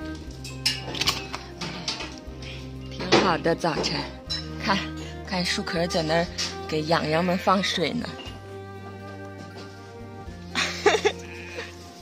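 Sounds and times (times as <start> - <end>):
background music: 0.0 - 12.0
sheep bleating: 10.9 - 11.9.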